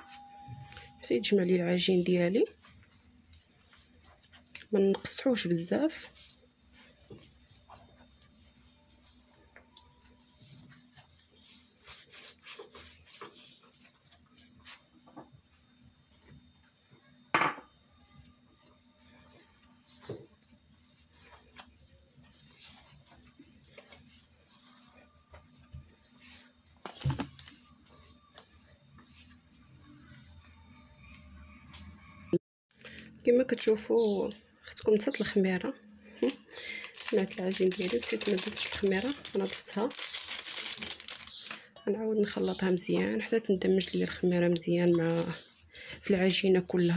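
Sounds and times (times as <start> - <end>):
hands kneading dough: 2.4 - 15.1, 18.0 - 31.3, 36.1 - 46.9.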